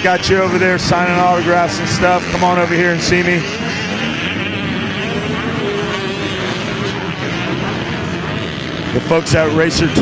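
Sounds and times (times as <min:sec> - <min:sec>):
motorbike engines droning: 0:00.0 - 0:10.0.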